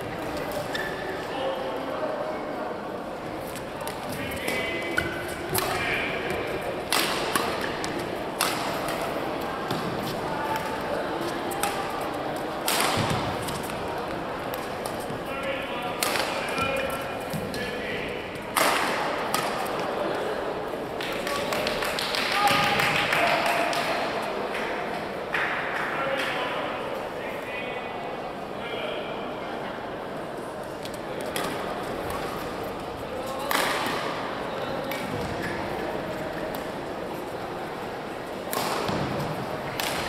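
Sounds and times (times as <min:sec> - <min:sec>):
rackets striking shuttlecock: 0:03.9 - 0:10.8, 0:11.6 - 0:12.0, 0:12.6 - 0:13.8, 0:15.9 - 0:17.6, 0:18.5 - 0:19.8, 0:38.5 - 0:40.0.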